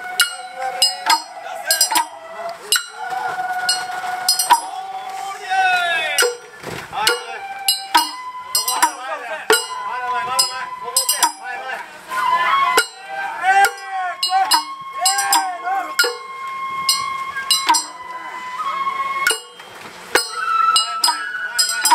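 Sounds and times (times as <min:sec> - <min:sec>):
bamboo flute high notes: 0:00.0 - 0:21.9
ringing metallic strikes: 0:00.2 - 0:03.0, 0:03.7 - 0:04.7, 0:06.2 - 0:11.4, 0:12.8 - 0:13.0, 0:13.6 - 0:16.3, 0:16.9 - 0:18.0, 0:19.3 - 0:19.6, 0:20.2 - 0:21.9.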